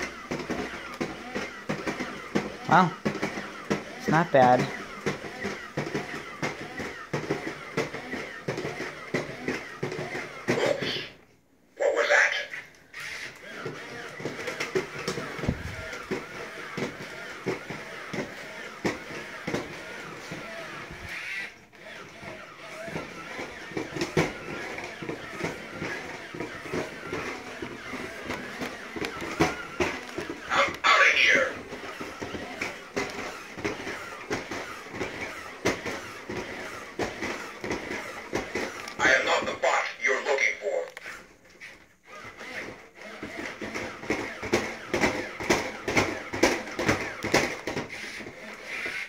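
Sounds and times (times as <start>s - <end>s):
plastic feet clicking on vinyl floor: 0.0s - 11.2s, 12.7s - 49.0s
toy robot gear motors whirring: 0.0s - 11.2s, 12.0s - 49.0s
electronic voice-like sounds: 10.5s - 11.2s, 11.8s - 12.7s, 30.5s - 31.6s, 39.0s - 40.9s.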